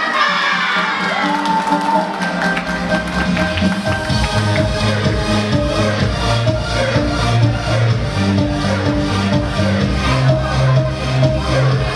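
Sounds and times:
crowd cheering and shouting: 0:00.0 - 0:11.9
music: 0:00.0 - 0:11.9.

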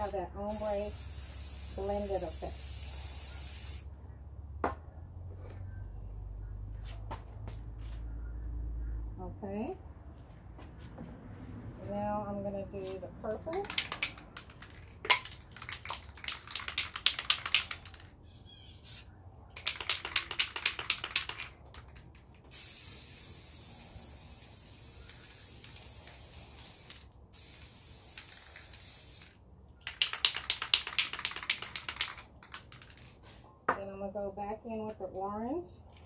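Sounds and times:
spray can ball rattling: 0:00.0 - 0:03.9, 0:13.3 - 0:18.1, 0:18.8 - 0:33.4
spray paint hissing: 0:00.0 - 0:03.9, 0:13.5 - 0:18.1, 0:18.8 - 0:33.1.

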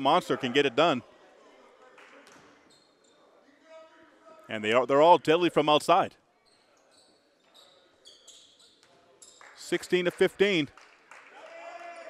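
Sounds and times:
sneakers squeaking on hardwood: 0:06.4 - 0:09.4.

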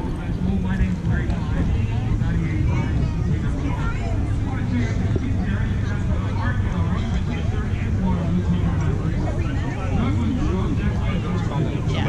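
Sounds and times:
indistinct chatter: 0:00.0 - 0:12.0.

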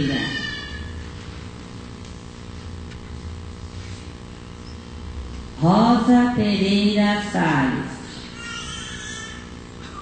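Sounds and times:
low hum in large hall: 0:00.0 - 0:10.0.

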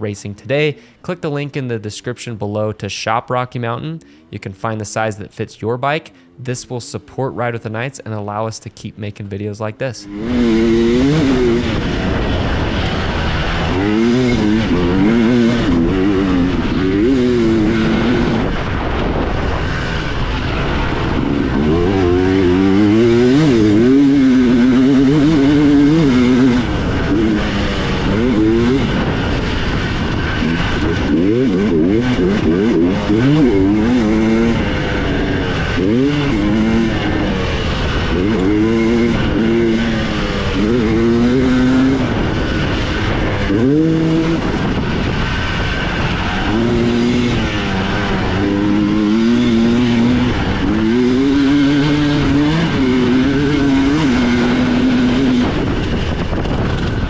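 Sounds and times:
dirt bike engine revving: 0:09.4 - 0:57.0.

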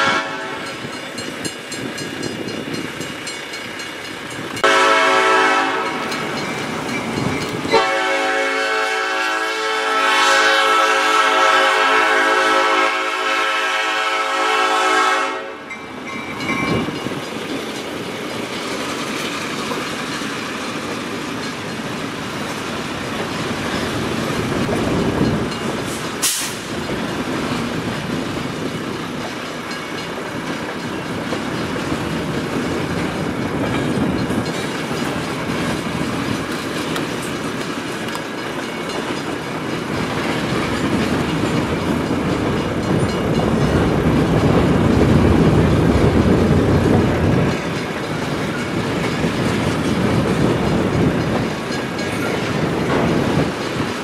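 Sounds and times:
train wheels clicking over rail joints: 0:00.0 - 0:12.4, 0:15.6 - 0:54.0.

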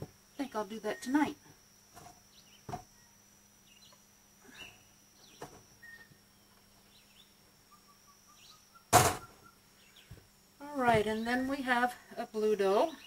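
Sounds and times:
faint bird chirps: 0:02.3 - 0:10.2
sharp knock: 0:08.9 - 0:09.4.

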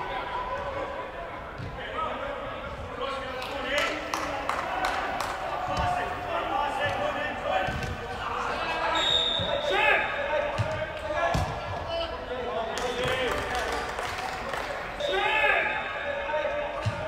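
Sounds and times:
players calling and shouting: 0:00.0 - 0:17.0.

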